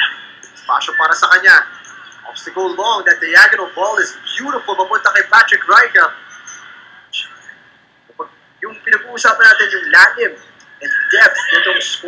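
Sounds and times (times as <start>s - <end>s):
televised football match background: 0.0s - 7.6s, 8.6s - 12.0s.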